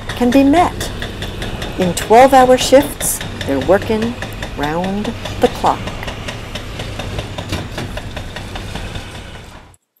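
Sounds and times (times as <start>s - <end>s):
diesel engine rumble: 0.0s - 9.8s.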